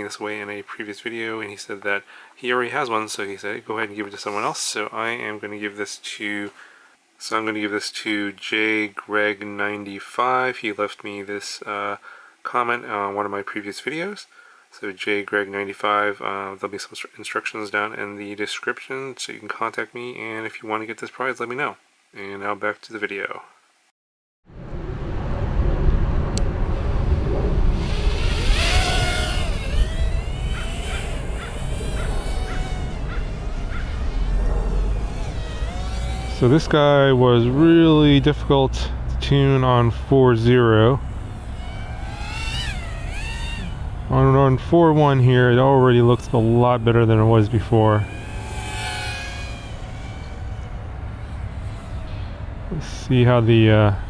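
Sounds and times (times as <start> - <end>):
wind rumble on microphone: 24.5 - 36.5
micro drone motors whining: 24.6 - 53.8.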